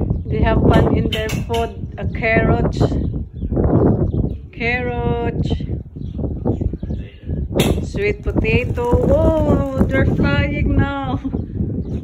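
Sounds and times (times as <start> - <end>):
pigeons wingbeats taking flight: 8.2 - 10.2.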